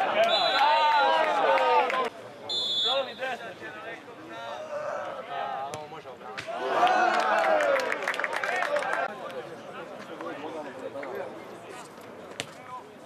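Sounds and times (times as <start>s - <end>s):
crowd shouting and cheering: 0.0s - 2.1s, 6.3s - 9.1s.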